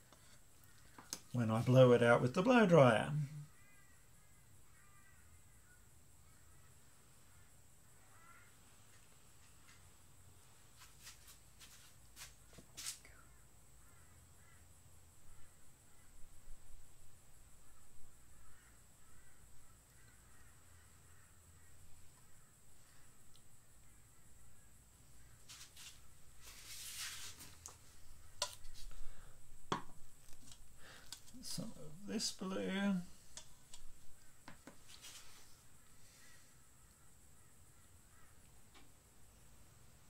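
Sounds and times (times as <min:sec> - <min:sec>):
faint distant bird calls: 0:00.0 - 0:40.0
faint clicks: 0:23.3 - 0:23.5.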